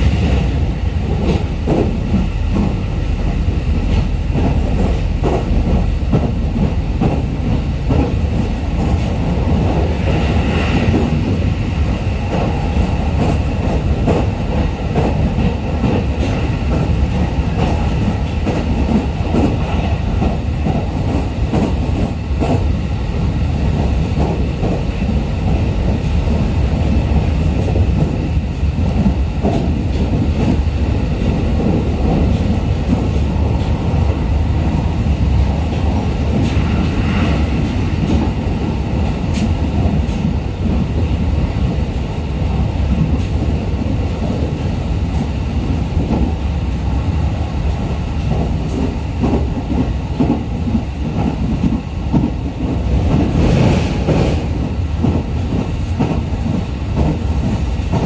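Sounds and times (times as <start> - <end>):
train wheels rumbling on rails: 0.0 - 58.0.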